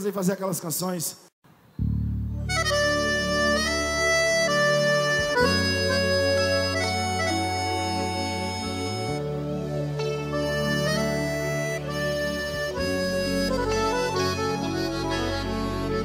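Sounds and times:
accordion slow melody: 1.8 - 16.0
sustained low bass tones: 1.8 - 16.0.

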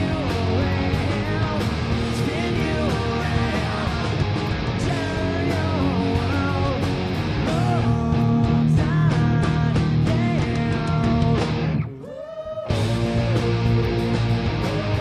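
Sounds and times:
live rock band playing: 0.0 - 12.0, 12.7 - 15.0.

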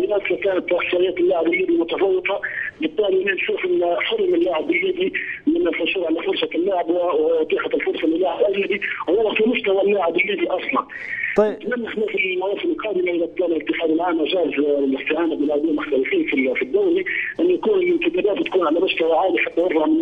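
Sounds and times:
man speaking over telephone: 0.0 - 20.0.

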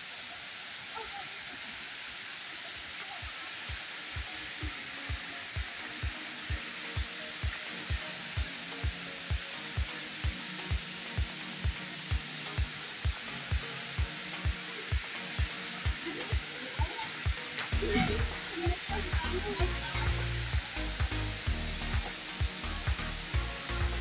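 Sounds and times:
river rapids rushing over rocks: 0.4 - 24.0
dance music: 3.7 - 24.0.

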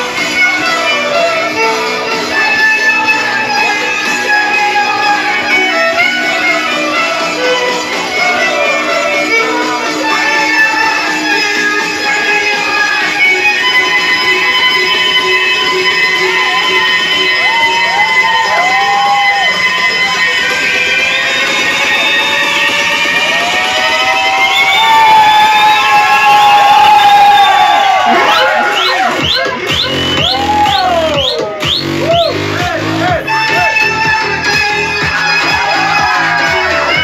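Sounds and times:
electric violin sliding notes: 0.0 - 25.9, 33.1 - 37.0
crowd cheering and shouting: 0.0 - 37.0
electronic dance backing track: 0.0 - 37.0
heavy bass beat: 0.0 - 37.0.

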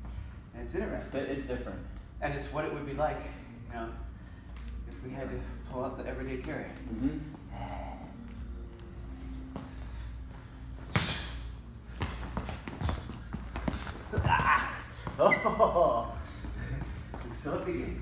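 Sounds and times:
heavy breathing: 6.9 - 14.1, 16.2 - 17.2
footsteps on wooden floor: 11.8 - 17.7
person exclaiming: 14.2 - 16.0.

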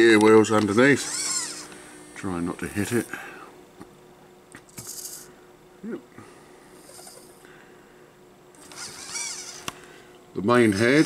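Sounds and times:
servo motors whirring: 0.6 - 1.8, 8.6 - 9.8, 10.6 - 11.0.

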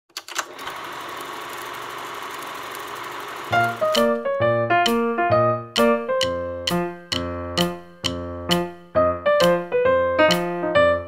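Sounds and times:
film projector clattering: 0.2 - 4.3
film projector clicks: 0.2 - 4.3
piano music: 3.5 - 11.0.

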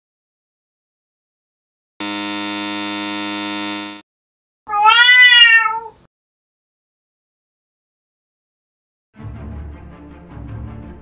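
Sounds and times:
electronic buzzing tone: 2.0 - 4.0
cat meowing: 4.7 - 6.1.

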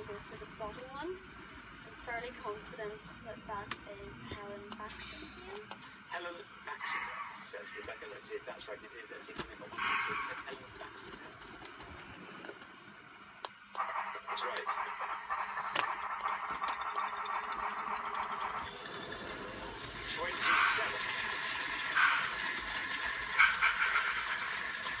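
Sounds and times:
faint television voice: 3.9 - 11.5, 13.8 - 15.3, 20.1 - 21.2
model train whirring rattle: 7.8 - 25.0.

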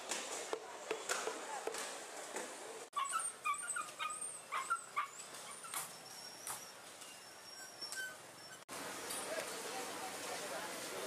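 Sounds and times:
dogs whimpering and yipping: 3.0 - 8.7.

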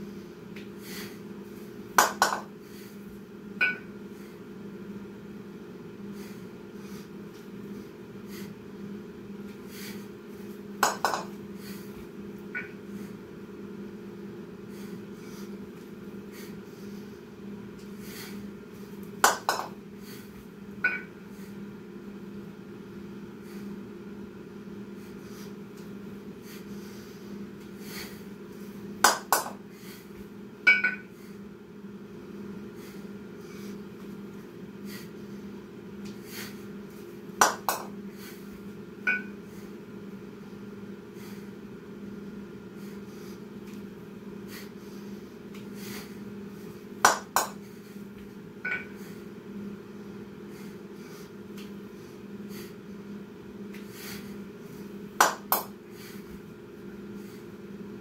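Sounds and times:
steady low hum: 0.0 - 58.0
kettlebells clanking: 48.7 - 48.9.

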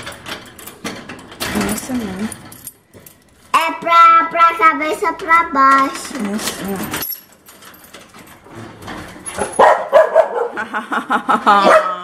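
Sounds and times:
dog barking and yipping: 9.4 - 10.6, 11.6 - 12.0
people laughing: 10.5 - 12.0.

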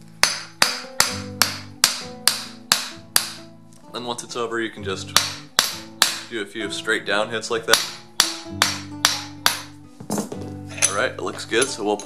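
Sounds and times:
hammer striking steel plate: 0.1 - 3.5, 5.1 - 6.3, 7.7 - 9.8.

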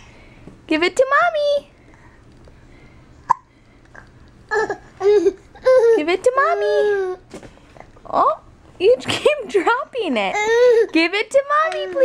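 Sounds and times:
baby babbling: 4.5 - 6.0, 10.3 - 10.9.

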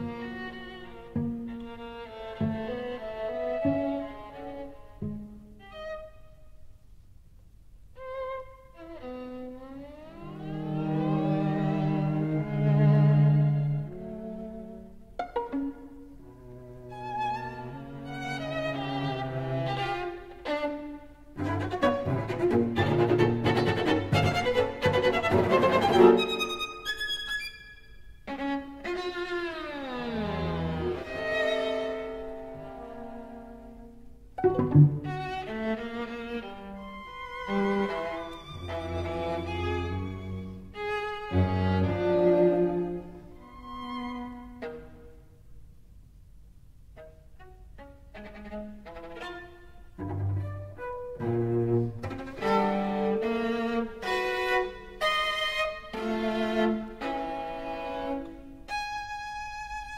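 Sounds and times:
string trio chamber music: 0.0 - 59.9.

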